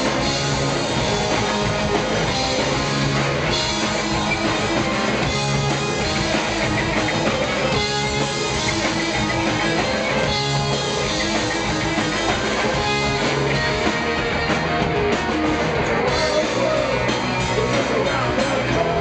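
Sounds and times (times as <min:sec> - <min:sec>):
bass guitar: 0:00.0 - 0:19.0
distorted electric guitar: 0:00.0 - 0:19.0
drums: 0:00.0 - 0:19.0
man singing lead: 0:15.8 - 0:19.0.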